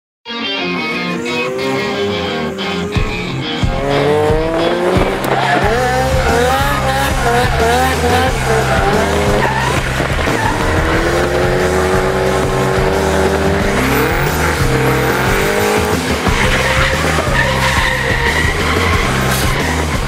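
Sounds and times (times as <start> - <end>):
music with heavy bass beat: 0.6 - 20.0
tyres squealing and skidding: 0.7 - 20.0
car engines revving hard: 0.8 - 20.0.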